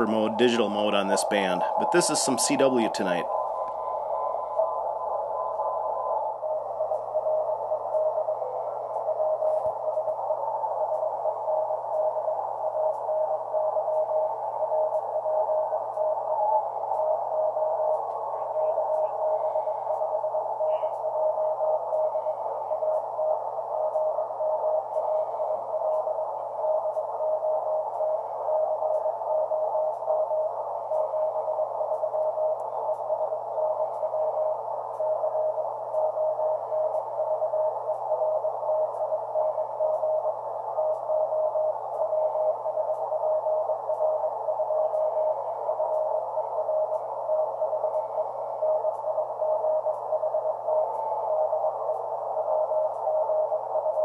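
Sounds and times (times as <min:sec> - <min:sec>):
low steady hum: 0:00.0 - 0:54.0
radio static: 0:00.0 - 0:54.0.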